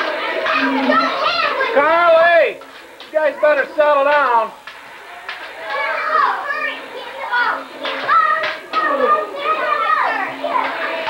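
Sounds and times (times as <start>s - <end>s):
children shouting and calling out: 0.0s - 2.4s, 5.6s - 11.0s.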